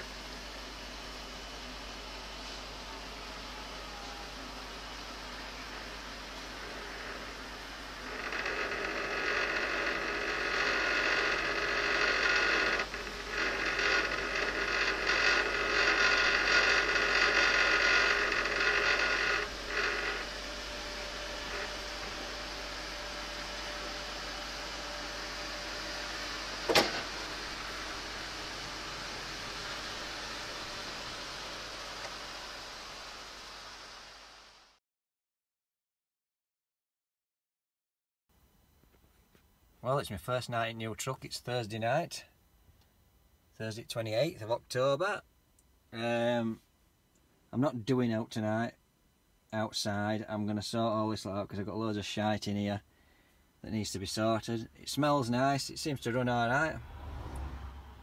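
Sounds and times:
steady hiss: 0.0 - 34.8
hydraulic crane whining: 6.4 - 32.7.

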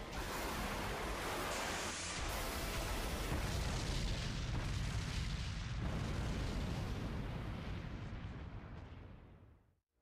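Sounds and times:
deep explosion rumble: 3.3 - 9.6.

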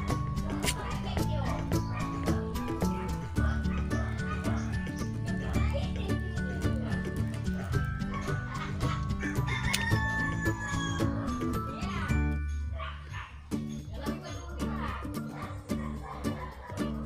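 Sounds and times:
background music: 0.0 - 17.0
rooster crowing: 9.2 - 11.4.

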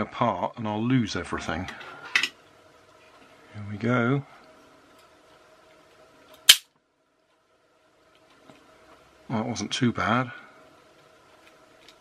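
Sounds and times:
loud plastic snap: 6.5 - 6.7.

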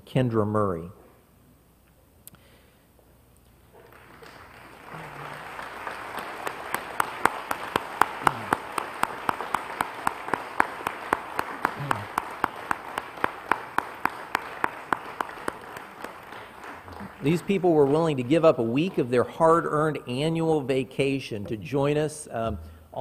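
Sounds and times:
congregation applauding: 3.6 - 20.3
sharp nearby hand claps: 3.8 - 18.0.

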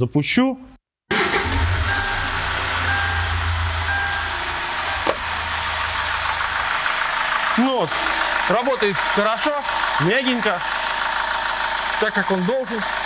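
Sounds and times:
diesel engine idling: 1.1 - 13.0
short high beeps: 1.9 - 4.4.

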